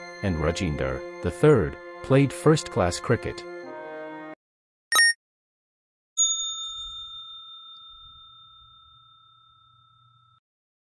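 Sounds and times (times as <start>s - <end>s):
button click: 4.9s - 5.2s
bell-like ding: 5.0s - 5.2s.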